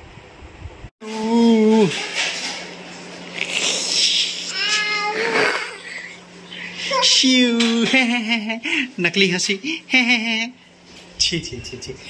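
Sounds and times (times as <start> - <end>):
toddler giggling: 4.5 - 6.2.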